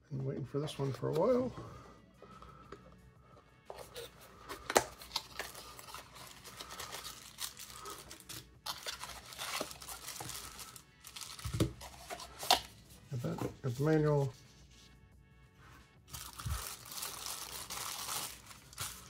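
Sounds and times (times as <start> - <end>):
faint background music: 0.0 - 19.0
plastic bag crinkling: 5.1 - 12.0, 16.1 - 19.0.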